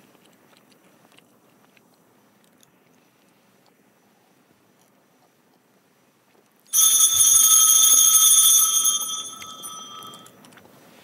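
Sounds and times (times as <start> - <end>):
small bell ringing: 6.7 - 10.4.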